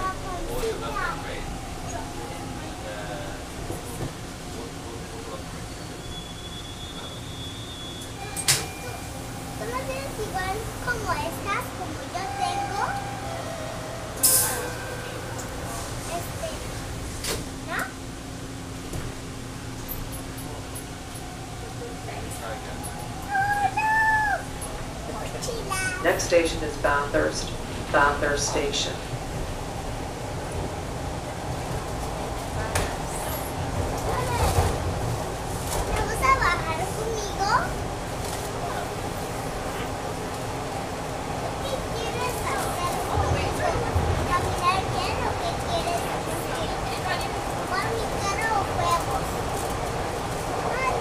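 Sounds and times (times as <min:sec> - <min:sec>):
subway car low hum: 0:00.0 - 0:51.0.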